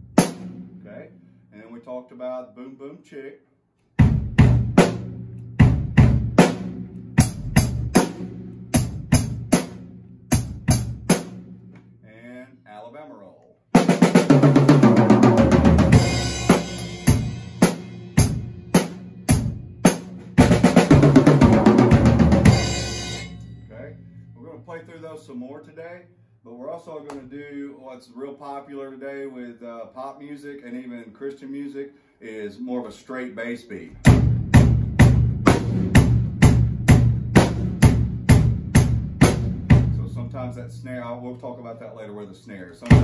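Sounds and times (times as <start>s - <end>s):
bass drum and snare beat: 0.0s - 1.0s, 4.0s - 12.0s, 13.8s - 23.9s, 34.0s - 41.0s
cymbals ringing: 22.4s - 25.0s.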